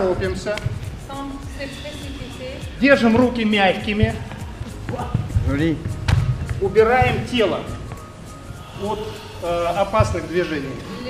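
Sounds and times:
bare feet thudding and shuffling: 3.1 - 7.3
sharp knocks: 3.1 - 7.3.

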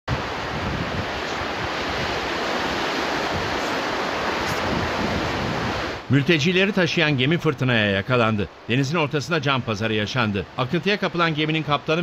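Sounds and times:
storm wind rushing: 0.1 - 6.1
wind buffeting microphone: 0.1 - 6.1
sea waves: 0.1 - 12.0.

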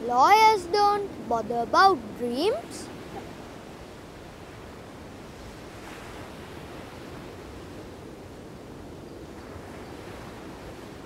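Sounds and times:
ocean waves breaking: 0.0 - 11.0.

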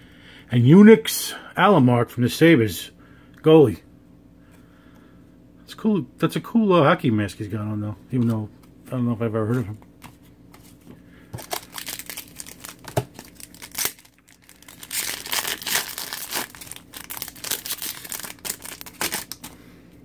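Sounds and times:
foil wrapper tearing and crinkling: 11.4 - 19.6.

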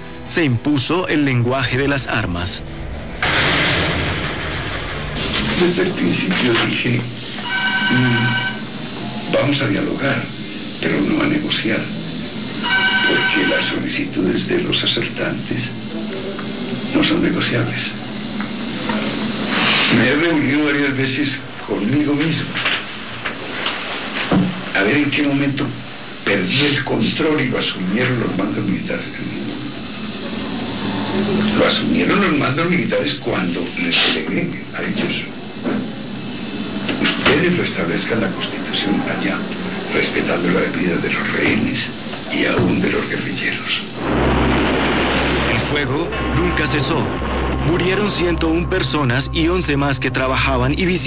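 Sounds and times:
hissing noise burst: 2.6 - 51.0.

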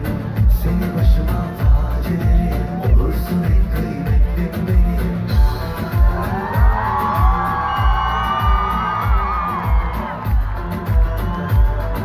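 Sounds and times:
crowd voices: 0.0 - 12.0
live pop music through speakers: 0.0 - 12.0.

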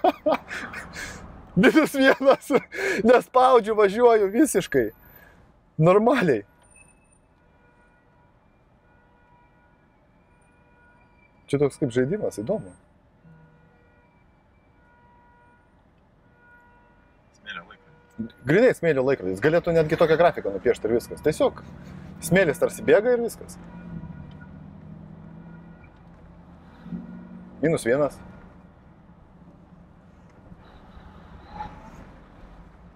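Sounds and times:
road rumble: 0.0 - 32.9.

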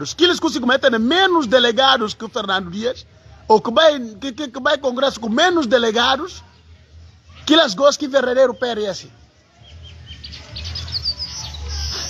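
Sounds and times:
small bird chirping: 8.4 - 12.0.

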